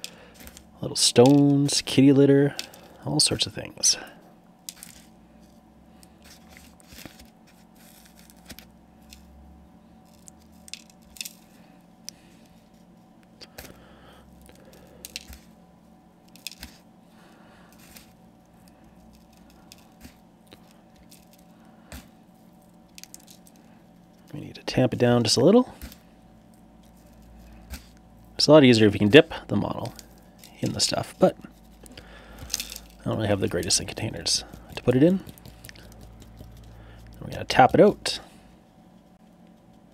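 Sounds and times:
faint steady hum: 0:00.0 - 0:39.9
grit sprinkled onto base: 0:32.5 - 0:37.7.

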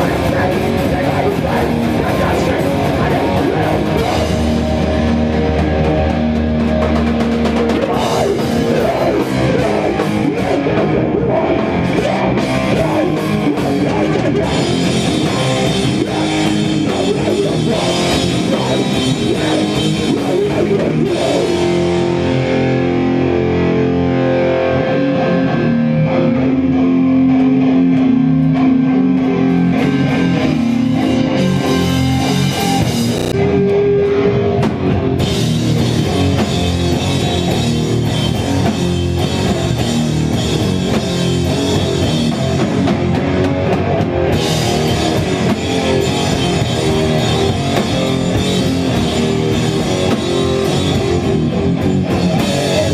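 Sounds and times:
distorted electric guitar: 0:00.0 - 0:52.9
drum kit: 0:00.0 - 0:52.9.

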